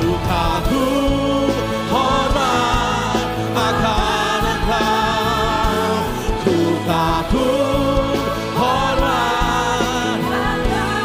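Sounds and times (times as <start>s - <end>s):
instrumental accompaniment: 0.0s - 11.0s
man singing lead: 0.0s - 11.0s.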